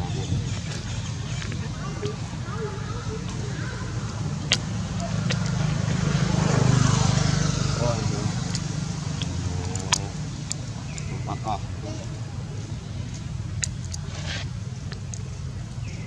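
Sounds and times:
faint voices: 0:00.0 - 0:13.3
vehicle engine passing by: 0:03.0 - 0:11.6
sharp clicks: 0:13.6 - 0:14.1.

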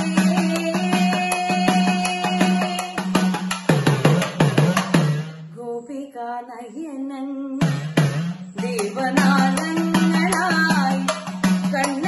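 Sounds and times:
drum struck with stick: 0:00.0 - 0:05.4, 0:07.6 - 0:12.0.

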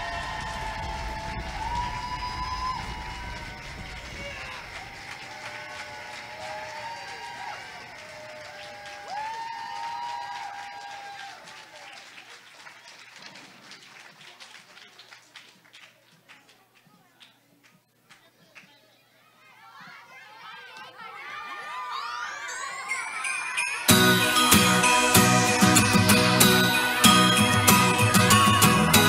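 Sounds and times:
whoops and shouts: 0:00.0 - 0:11.5, 0:21.1 - 0:24.0
audience applauding: 0:00.0 - 0:18.3, 0:21.1 - 0:29.0.

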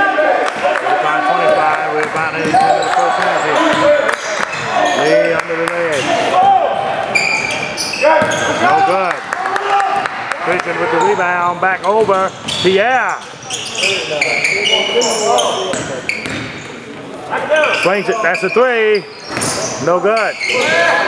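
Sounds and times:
voices in gym: 0:00.0 - 0:21.0
sneaker squeaks: 0:02.1 - 0:08.9, 0:11.0 - 0:21.0
basketball bouncing on wood floor: 0:15.7 - 0:16.5.

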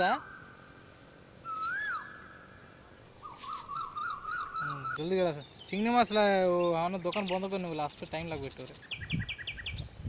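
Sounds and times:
high whistled calls: 0:00.0 - 0:10.0.

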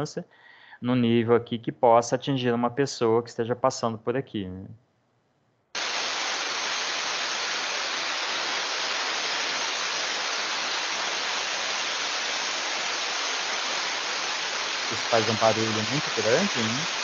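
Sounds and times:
steam hissing from safety valve: 0:05.8 - 0:17.0.

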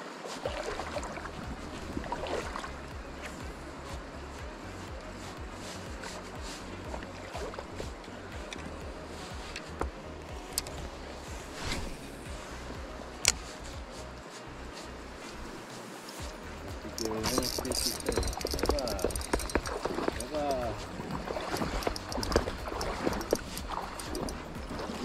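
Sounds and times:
shallow river rushing: 0:00.0 - 0:25.0
wind rumbling on microphone: 0:00.4 - 0:25.0
sharp clicks: 0:17.2 - 0:20.3.

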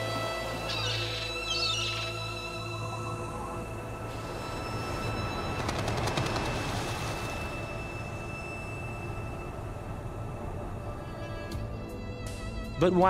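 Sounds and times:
ambient background score: 0:00.0 - 0:13.0.

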